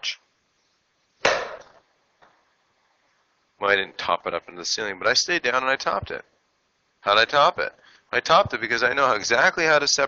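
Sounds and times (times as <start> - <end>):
golf club striking ball: 1.2 - 1.8.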